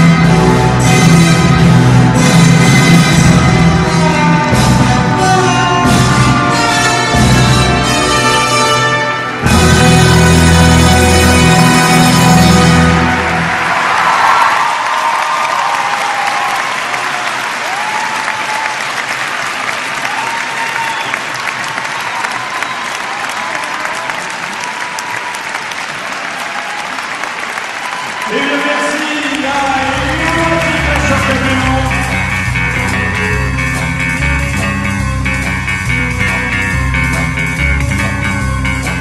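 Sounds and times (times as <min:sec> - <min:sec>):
music: 0:00.0 - 0:13.8, 0:28.7 - 0:39.0
audience applauding and cheering: 0:10.1 - 0:32.9.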